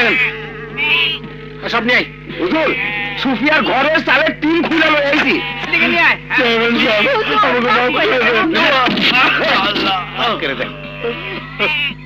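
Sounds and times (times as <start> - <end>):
goats bleating: 0.0 - 12.0
voices: 0.0 - 12.0.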